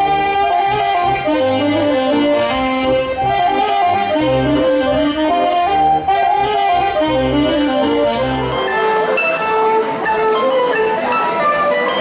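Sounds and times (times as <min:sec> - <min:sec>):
folk dance band playing: 0:00.0 - 0:12.0.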